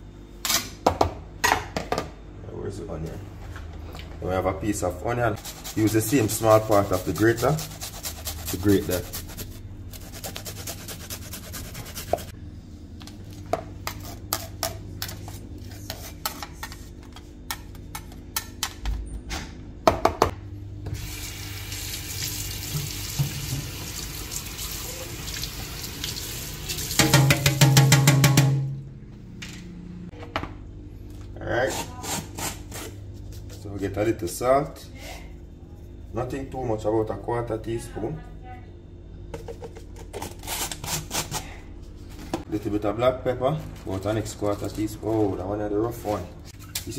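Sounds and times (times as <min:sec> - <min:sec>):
tap water running onto metal grater: 0:22.6 - 0:27.7.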